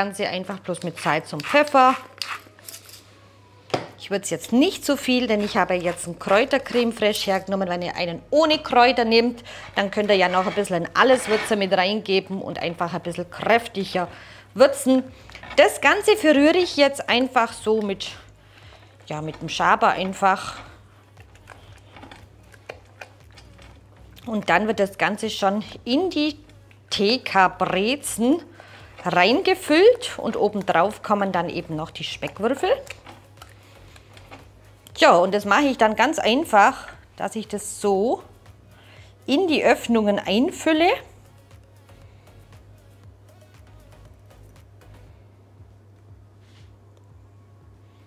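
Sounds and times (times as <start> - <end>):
spatula scraping in cream: 0.5 - 2.8, 4.9 - 7.2, 9.6 - 11.8, 14.7 - 25.7.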